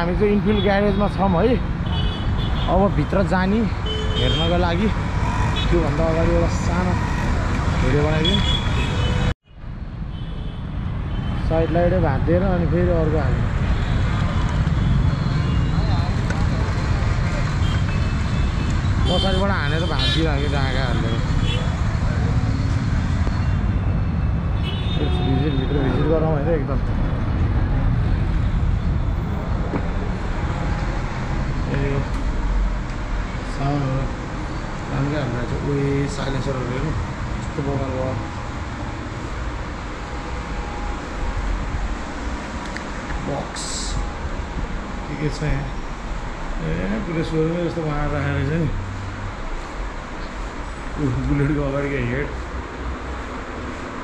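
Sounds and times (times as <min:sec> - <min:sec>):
street traffic rumble: 0:00.0 - 0:54.0
people talking: 0:19.1 - 0:21.2, 0:25.0 - 0:27.2, 0:31.7 - 0:32.1, 0:33.5 - 0:34.1, 0:34.9 - 0:38.2, 0:43.2 - 0:44.1, 0:45.1 - 0:45.8, 0:46.6 - 0:48.8, 0:51.0 - 0:52.3.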